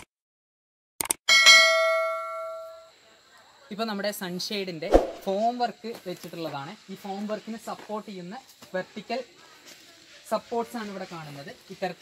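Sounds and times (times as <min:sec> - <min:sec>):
bright bell ding: 0:01.3 - 0:02.9.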